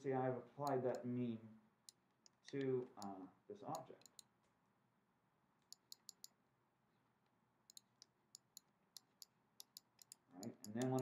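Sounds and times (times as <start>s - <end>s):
faint computer mouse clicks: 1.9s - 4.3s, 5.6s - 6.4s, 7.7s - 11.0s.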